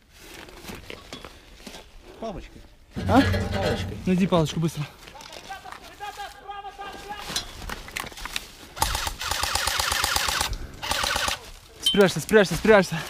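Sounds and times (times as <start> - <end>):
airsoft rifle firing bursts: 8.8 - 11.4.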